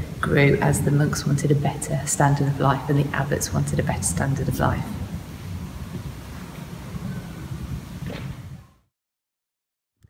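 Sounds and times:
low rumbling noise: 0.0s - 8.9s.

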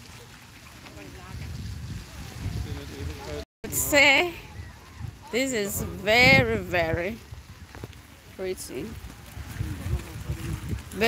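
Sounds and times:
wind rumbling on microphone: 0.7s - 11.0s.

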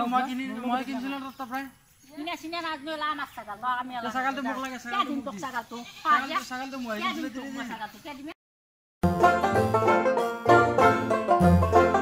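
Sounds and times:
goat bleating: 5.6s - 6.4s.

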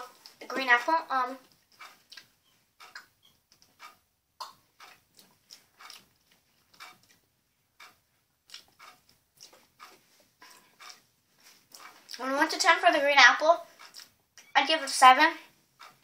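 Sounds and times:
lip smacks and tongue clicks: 1.5s - 3.7s, 4.4s - 7.2s, 8.5s - 11.0s, 13.8s - 14.5s.

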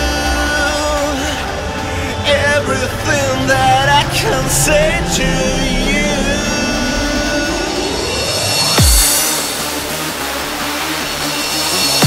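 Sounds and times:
noisy synth wash: 0.0s - 12.0s.

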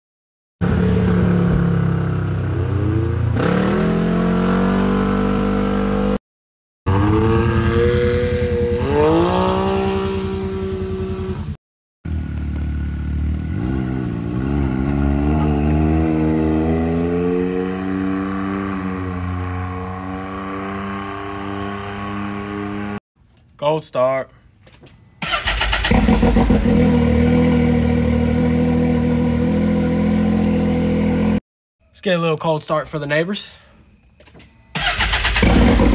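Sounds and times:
engine revving and accelerating: 0.6s - 6.2s, 6.9s - 23.0s, 25.5s - 31.4s, 34.8s - 35.9s.

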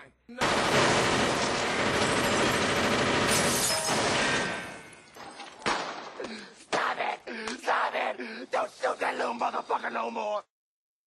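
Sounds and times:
rapid gunfire: 0.4s - 4.6s.

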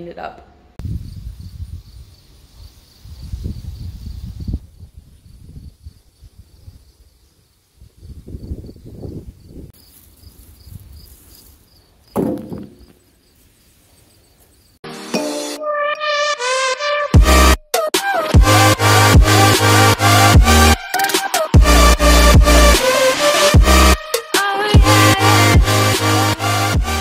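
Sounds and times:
wind buffeting microphone: 0.8s - 2.2s, 3.0s - 7.1s, 7.8s - 9.8s
insects chirping: 0.8s - 14.8s.

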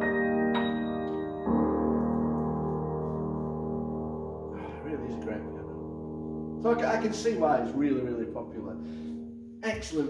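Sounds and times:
piano chord ringing: 0.0s - 10.0s
man's voice: 4.6s - 5.8s, 6.6s - 8.8s, 9.6s - 10.0s.

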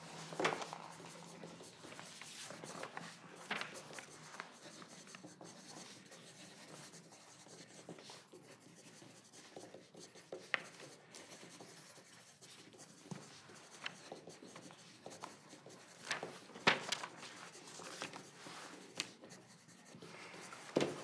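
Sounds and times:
pencils scratching on paper: 0.0s - 21.0s.

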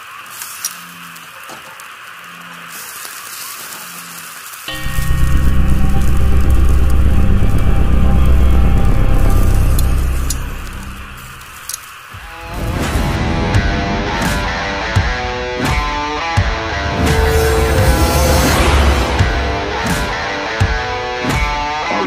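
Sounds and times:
steady hiss: 0.0s - 12.5s
deep rumbling boom: 4.7s - 11.4s, 16.4s - 20.9s
music: 4.7s - 22.0s.

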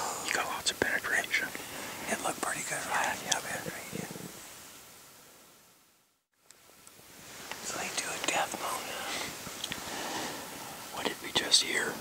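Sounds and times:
man whispering: 0.0s - 4.4s, 7.6s - 9.4s, 10.8s - 12.0s.

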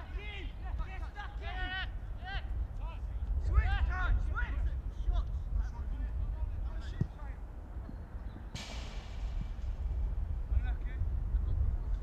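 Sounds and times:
steady low rumble: 8.5s - 12.0s.

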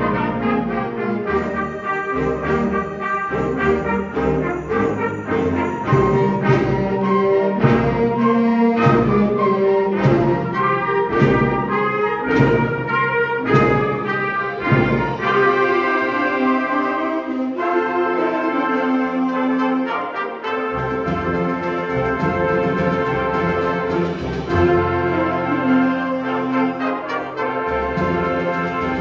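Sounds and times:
concert band playing: 0.0s - 17.4s, 20.0s - 29.0s.

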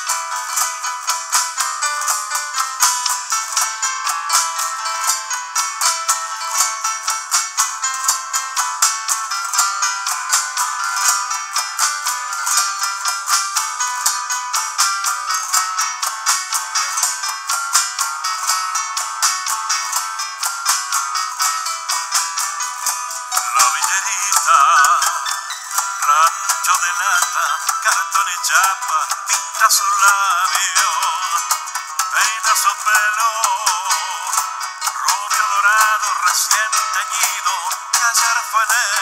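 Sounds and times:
hand percussion: 0.0s - 39.0s
keyboard: 0.0s - 39.0s
nylon-string acoustic guitar: 0.0s - 39.0s.

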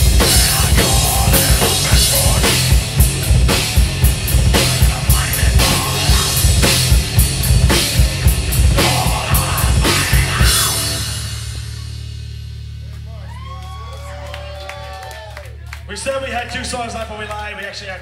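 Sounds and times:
electric guitar: 0.0s - 12.1s
drum kit hits: 0.0s - 12.9s
heavy rock band playing: 0.0s - 13.1s.

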